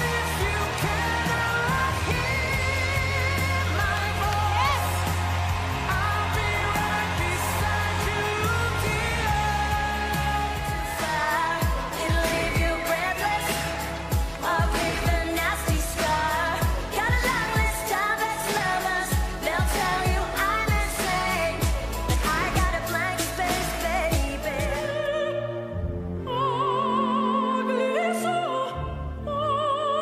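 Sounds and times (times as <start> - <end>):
backing track: 0.0 - 28.9
person singing pop song: 0.0 - 30.0.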